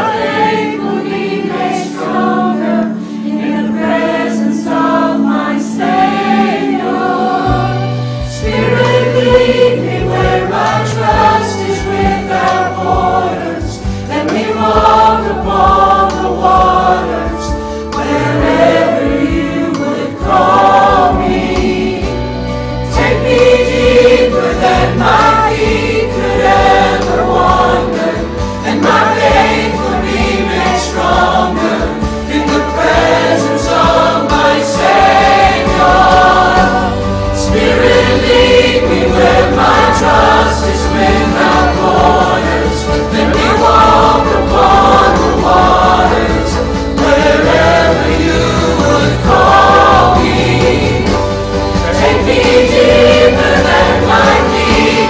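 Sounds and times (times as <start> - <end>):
choir and congregation singing hymn: 0.0 - 55.0
piano accompaniment: 0.0 - 55.0.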